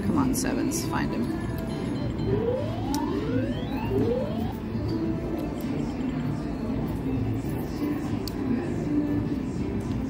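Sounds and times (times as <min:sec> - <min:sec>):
casino background hum: 0:00.0 - 0:10.0
rising electronic tones: 0:01.9 - 0:05.0.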